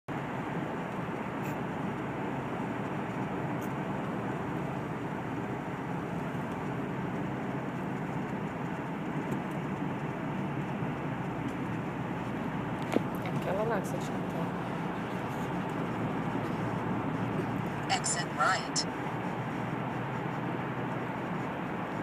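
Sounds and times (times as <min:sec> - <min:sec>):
car road and engine noise: 0:00.1 - 0:22.0.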